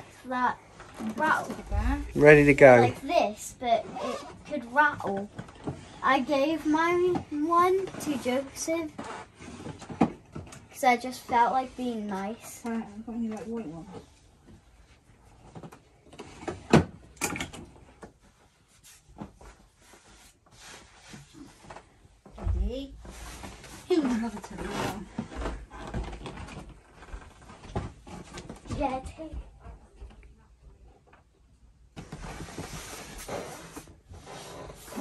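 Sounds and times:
bedding rustling: 0.1s - 12.4s, 17.8s - 29.6s.

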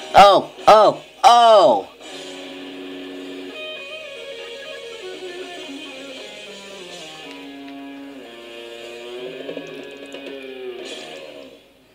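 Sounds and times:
sliding guitar notes: 0.1s - 11.6s.

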